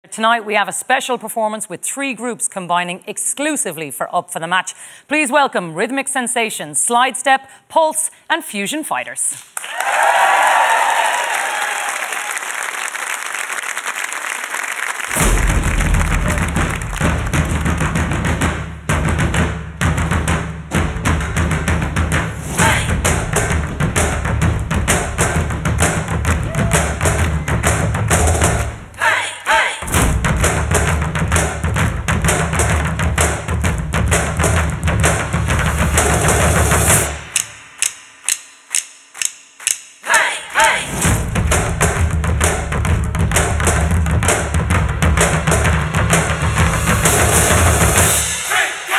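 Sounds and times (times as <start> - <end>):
audience applause: 9.6 - 18.1
music with heavy beat: 15.1 - 29.0, 29.8 - 40.0, 40.6 - 48.9
samba drums playing: 15.1 - 29.0, 29.8 - 37.8, 40.6 - 48.9.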